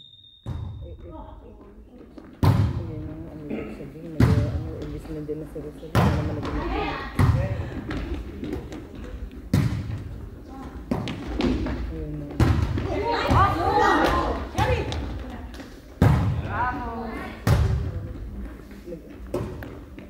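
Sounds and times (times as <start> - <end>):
players calling and shouting: 2.4 - 18.4
volleyball being struck: 16.0 - 16.5.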